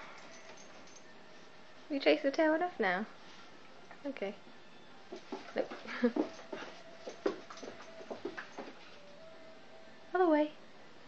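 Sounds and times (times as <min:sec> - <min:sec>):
dog thumping and scuffling on carpet: 0:05.1 - 0:08.9.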